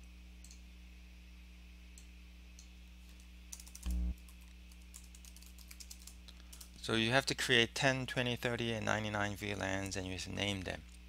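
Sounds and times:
faint electrical hum: 0.0 - 11.0
computer keyboard typing: 3.5 - 6.7.

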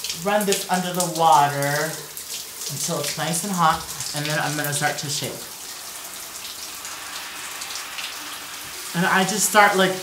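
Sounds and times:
shower water hissing: 0.0 - 10.0.

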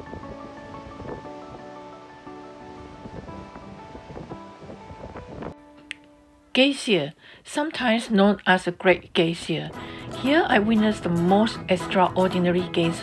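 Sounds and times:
background music with held notes: 0.0 - 6.6, 9.7 - 13.0.

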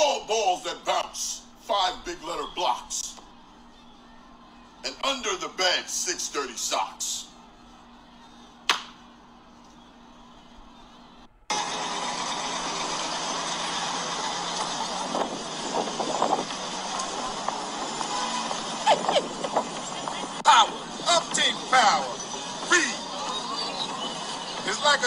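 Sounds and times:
scattered voices: 0.0 - 11.3, 13.7 - 25.0
sharp click: 8.7 - 9.0
traffic hiss and rumble: 11.5 - 25.0
person laughing: 18.8 - 19.4.

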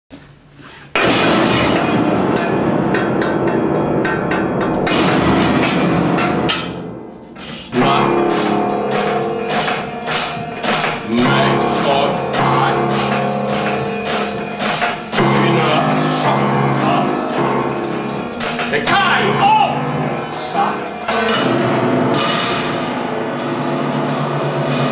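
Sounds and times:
grand piano chords: 1.0 - 24.9.

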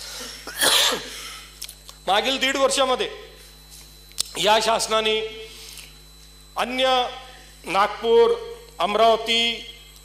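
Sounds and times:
loud cough: 0.2 - 1.4.

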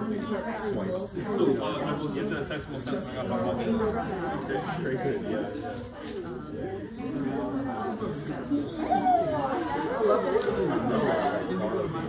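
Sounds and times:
overlapping conversational chatter: 0.0 - 12.0.

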